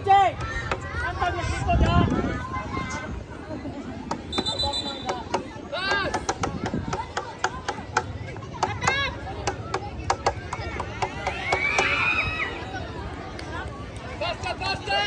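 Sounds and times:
people shouting: 10.9s - 12.7s.

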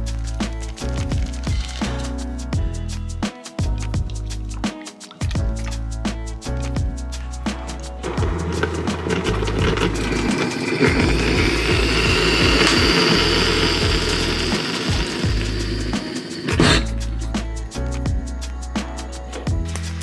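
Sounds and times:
background music with beat: 0.0s - 20.0s.

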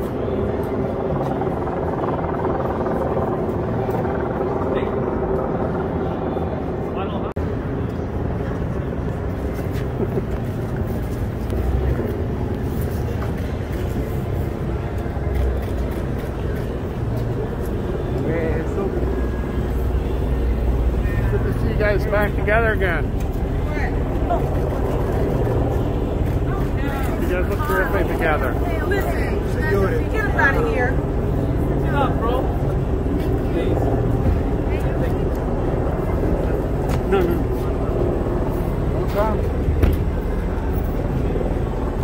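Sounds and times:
faint voices murmuring: 0.0s - 42.0s
vehicle engine rumbling: 0.0s - 42.0s
people talking: 14.9s - 25.7s, 26.3s - 32.6s, 33.2s - 38.2s, 38.8s - 39.6s.

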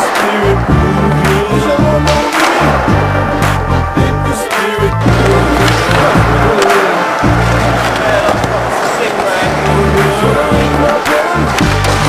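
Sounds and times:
hip-hop music: 0.0s - 12.0s
skateboard wheels rolling on concrete: 4.6s - 12.0s.

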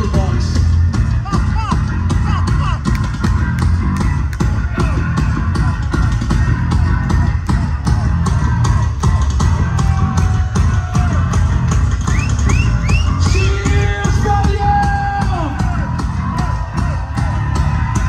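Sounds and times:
distorted electric guitars: 0.0s - 18.0s
driving drum beat: 0.0s - 18.0s.

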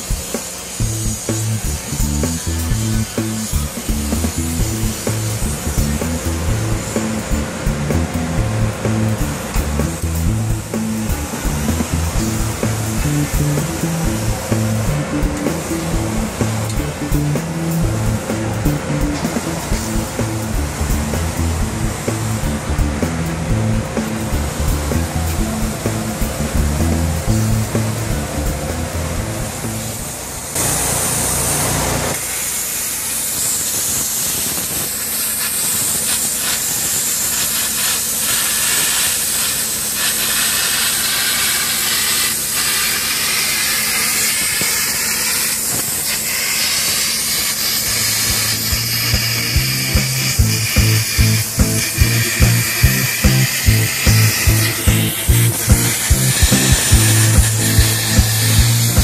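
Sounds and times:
plasma cutter hissing: 0.0s - 59.0s
background music: 0.8s - 30.0s, 48.8s - 59.0s.

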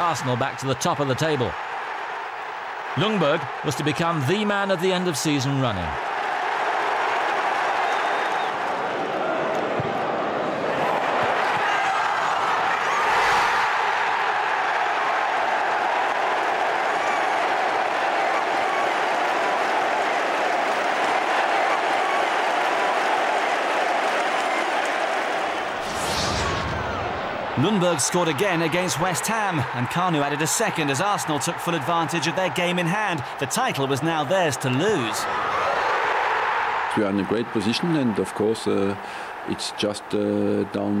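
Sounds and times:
crowd clapping: 0.0s - 12.9s, 13.7s - 25.8s, 27.3s - 40.5s
stadium crowd cheering: 0.0s - 41.0s.

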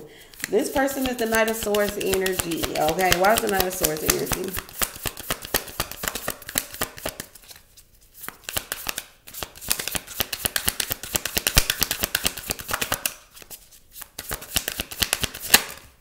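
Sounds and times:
cards being shuffled: 0.2s - 16.0s.

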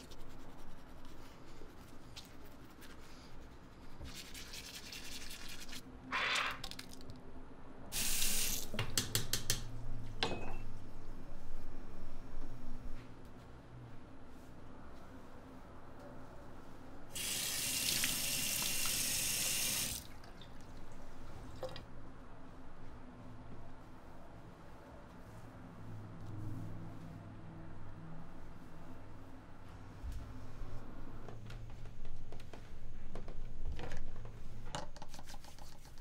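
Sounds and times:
toothbrush scrubbing teeth: 4.1s - 5.8s
water running into basin: 17.2s - 21.8s.

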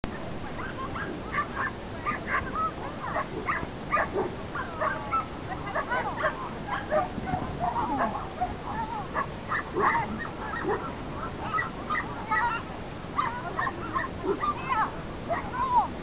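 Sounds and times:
dogs barking: 0.7s - 12.6s, 13.2s - 15.6s.

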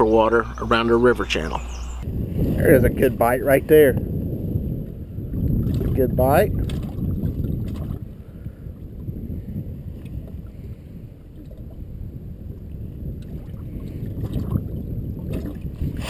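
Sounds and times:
wind rumbling on microphone: 0.0s - 16.0s
small waves lapping against hull: 4.8s - 16.0s.

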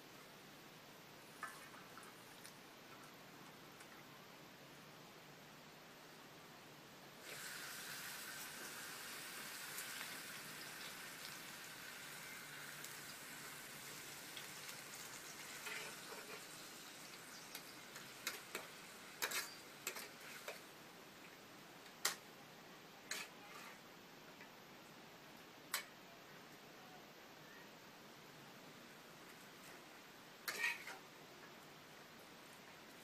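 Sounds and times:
greens sizzling in a wok: 7.2s - 20.7s, 30.4s - 31.0s
metal ladle scraping wok: 15.6s - 16.6s, 18.2s - 20.6s, 30.4s - 31.0s.

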